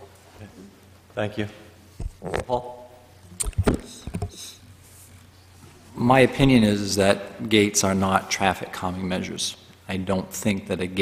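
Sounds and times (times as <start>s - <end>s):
knocks and clicks on microphone: 3.4s - 4.4s.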